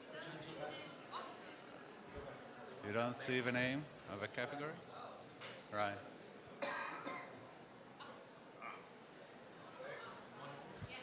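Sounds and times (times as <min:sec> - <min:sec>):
person coughing: 0:06.6 - 0:07.4.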